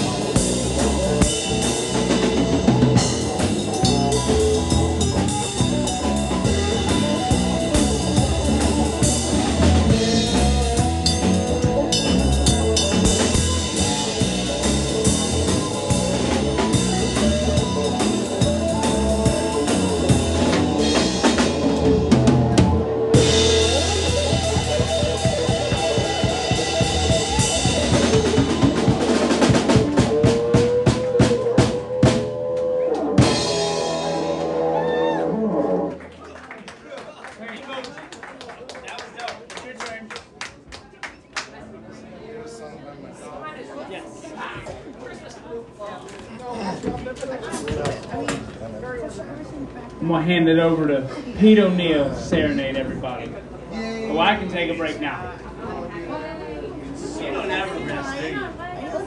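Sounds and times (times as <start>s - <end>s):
drum kit strokes: 0.0s - 35.9s
live band playing: 0.0s - 36.6s.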